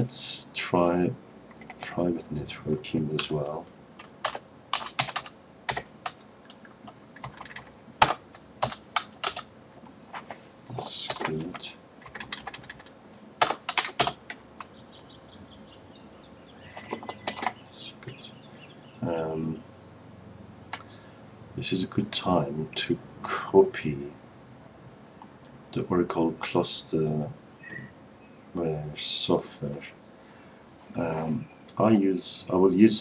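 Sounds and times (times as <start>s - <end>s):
typing on computer keyboard: 1.5s - 1.8s, 4.0s - 9.4s, 11.1s - 14.7s, 16.8s - 17.6s.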